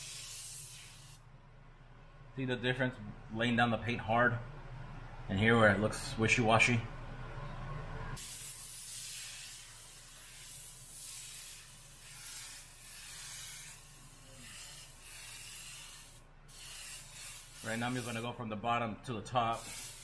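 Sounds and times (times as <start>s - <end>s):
airbrush air hiss: 0.0s - 1.2s, 8.2s - 18.3s, 19.5s - 20.0s.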